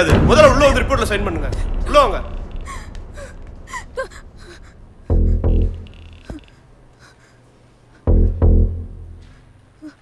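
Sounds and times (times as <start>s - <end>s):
person gasping: 2.6s - 8.2s.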